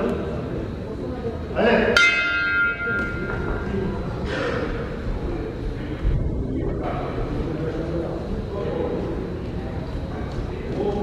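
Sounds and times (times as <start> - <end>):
boxing ring bell: 2.0 - 3.6.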